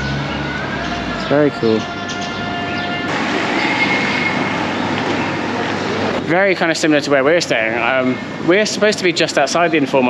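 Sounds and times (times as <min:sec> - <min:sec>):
steady rushing noise: 0:03.1 - 0:07.4.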